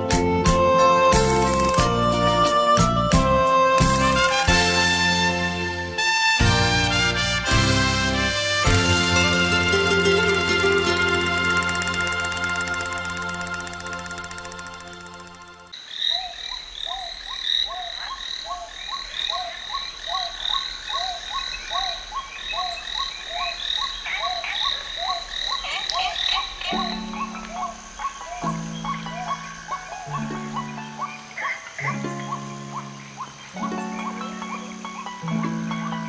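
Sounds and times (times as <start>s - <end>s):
long held musical notes: 8.6s - 15.7s
high chirping: 10.0s - 36.0s
croaking animal calls: 15.7s - 36.0s.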